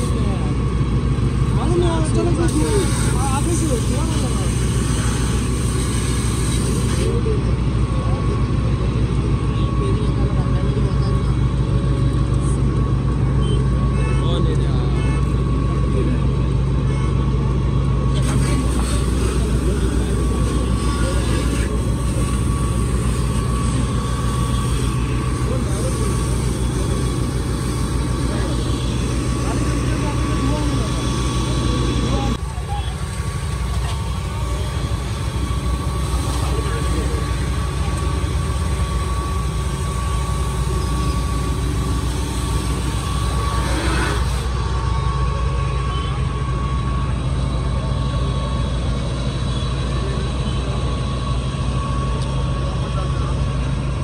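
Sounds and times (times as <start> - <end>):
indistinct voices: 0.0 - 54.0
vehicle engine idling: 0.0 - 54.0.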